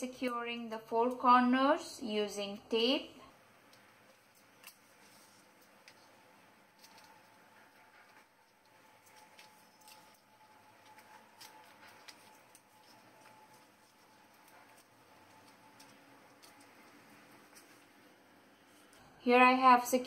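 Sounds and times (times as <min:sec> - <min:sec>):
faint room hiss: 0:00.0 - 0:20.0.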